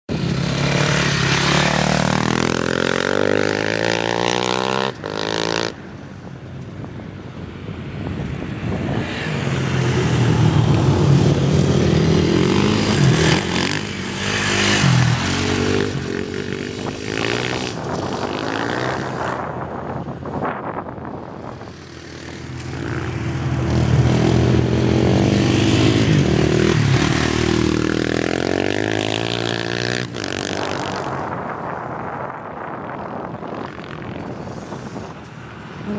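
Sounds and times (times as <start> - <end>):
dirt bike engine revving: 0.1 - 5.7, 23.8 - 31.0.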